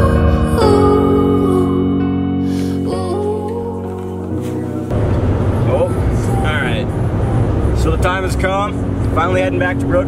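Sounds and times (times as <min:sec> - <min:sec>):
car engine rumble: 0:02.6 - 0:10.0
road noise: 0:03.7 - 0:10.0.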